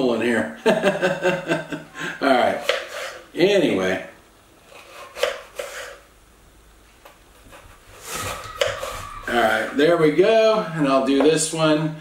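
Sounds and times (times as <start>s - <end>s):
knife slicing potato on board: 2.5s - 3.2s, 4.7s - 6.0s, 7.4s - 9.3s.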